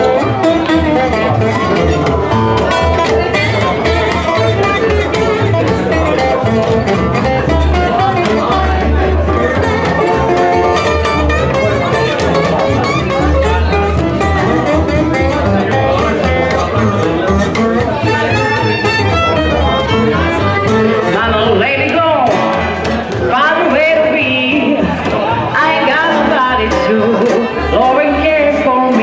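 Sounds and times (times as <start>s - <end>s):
acoustic guitar strumming: 0.0s - 29.0s
plucked double bass: 0.0s - 29.0s.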